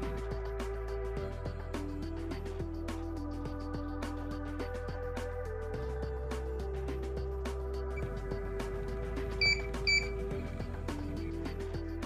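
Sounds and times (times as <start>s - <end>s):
background music: 0.0s - 12.0s
high electronic keypad beeps: 9.4s - 10.2s.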